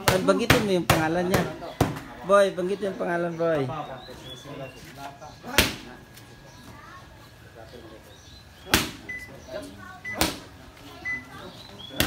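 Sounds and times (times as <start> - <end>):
punches hitting focus mitts: 0.0 - 2.1, 10.2 - 10.5.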